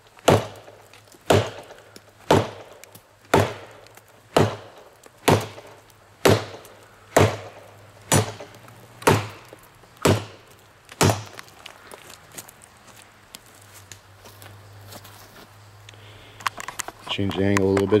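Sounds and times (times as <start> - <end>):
machete chopping tree trunk: 0.2 - 11.5.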